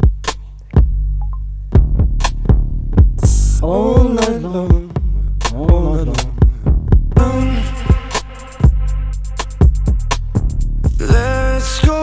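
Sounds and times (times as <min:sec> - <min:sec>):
punchy drum machine hits: 0:00.0 - 0:12.0.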